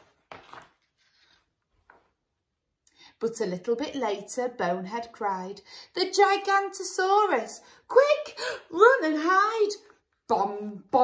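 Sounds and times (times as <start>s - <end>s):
paper handling sounds: 0.0s - 2.2s
paper page turning: 0.0s - 2.2s.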